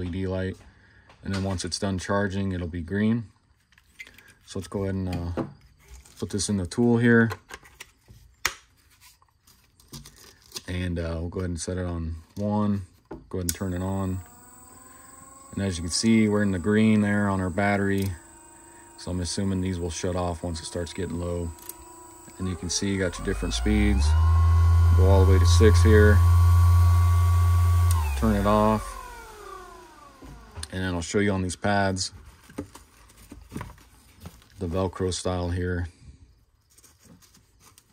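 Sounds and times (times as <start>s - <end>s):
polisher switch click: 13.5s - 30.8s
polisher motor whine: 13.5s - 31.0s
faint handling sounds: 31.6s - 35.9s, 36.6s - 37.9s.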